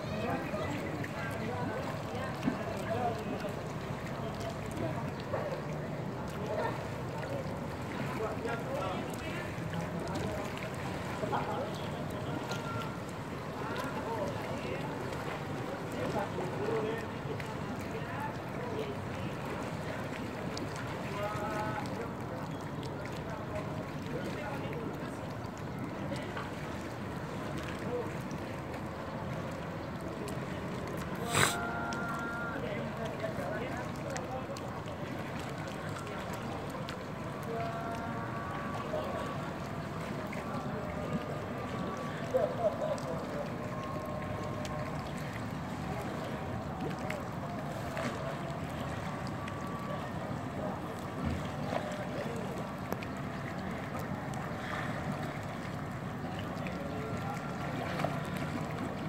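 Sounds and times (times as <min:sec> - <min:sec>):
faint distant voices: 0:00.0 - 0:59.0
pool water splashing: 0:00.0 - 0:59.0.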